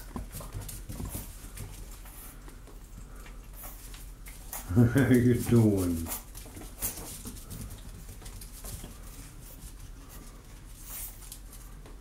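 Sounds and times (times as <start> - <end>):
puppies mouthing plush toy: 0.0 - 11.4
puppies scuffling on carpet: 0.0 - 12.0.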